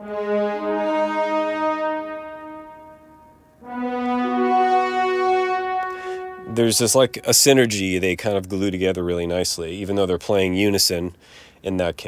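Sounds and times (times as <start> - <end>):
horns and trombones melody: 0.0 - 8.1.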